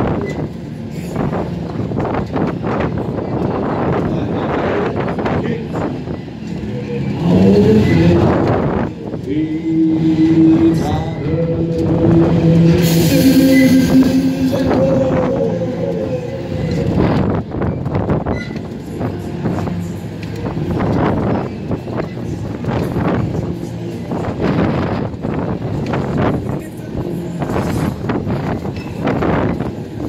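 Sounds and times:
wind rushing over microphone: 0.0s - 6.4s, 8.0s - 19.7s, 20.4s - 30.0s
fairground ride rumble: 0.0s - 30.0s
long held gliding tones: 9.5s - 17.3s.

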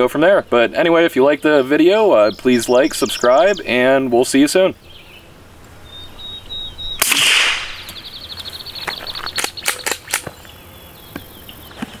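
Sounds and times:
suppressed pistol shot: 7.0s - 7.9s.

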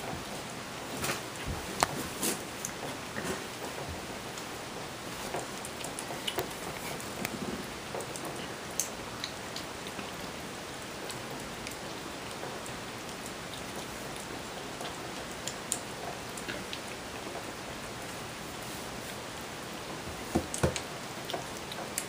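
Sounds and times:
kittens chewing and lapping: 0.0s - 22.0s
steady background hiss: 0.0s - 22.0s.

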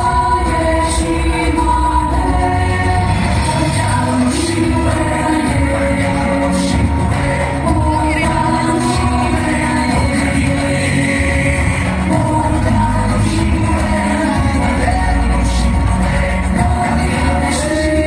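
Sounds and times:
music with singing and strong bass: 0.0s - 18.0s.

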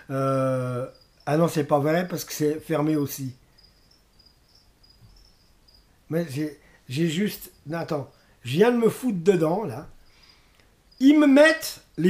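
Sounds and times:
faint high-pitched chirp: 3.0s - 6.0s.

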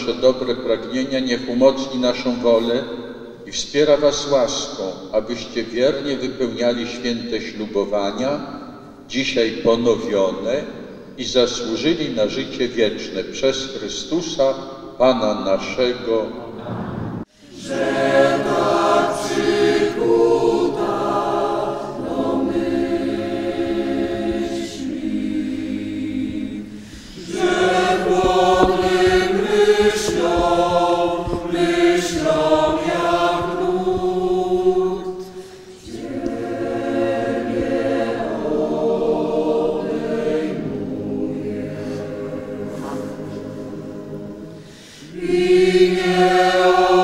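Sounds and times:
choir singing: 16.6s - 47.0s.

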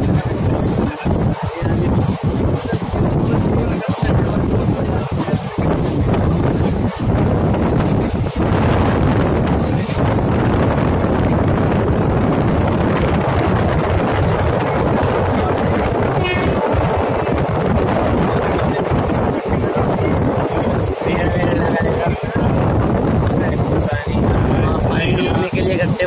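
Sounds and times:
moving train running noise: 0.0s - 26.0s.

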